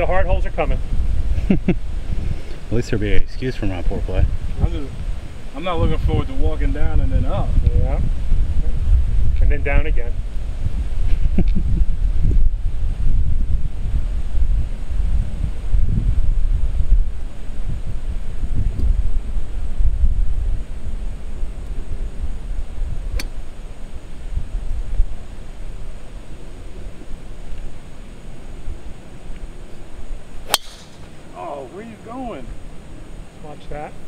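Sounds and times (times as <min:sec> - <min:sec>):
wind rumbling on microphone: 0:00.0 - 0:34.0
golf club striking ball: 0:30.4 - 0:31.2.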